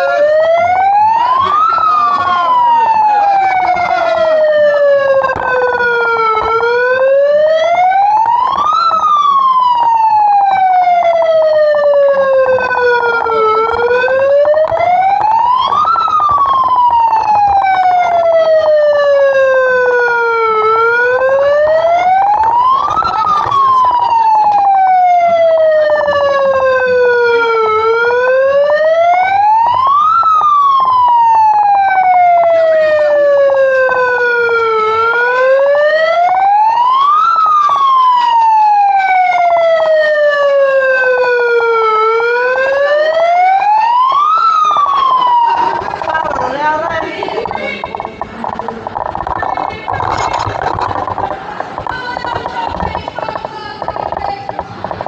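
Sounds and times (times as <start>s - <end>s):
electronic siren wailing: 0.0s - 55.0s.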